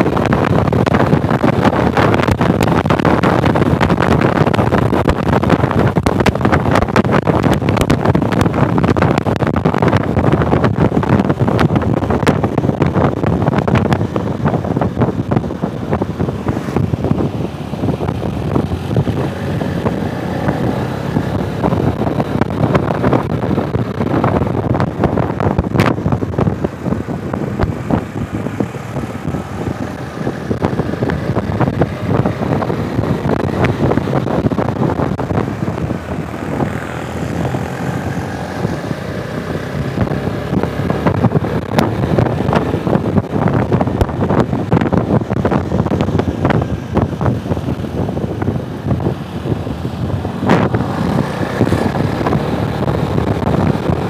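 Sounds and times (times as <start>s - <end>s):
motorcycle engine drone: 0.0s - 54.0s
wind buffeting microphone: 0.0s - 54.0s.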